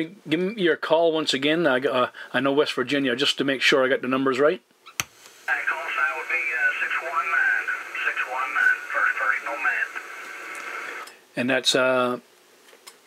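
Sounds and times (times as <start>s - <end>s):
radio click: 5.0s - 11.1s
radio static hiss: 5.0s - 11.1s
man talking over radio: 5.5s - 11.0s.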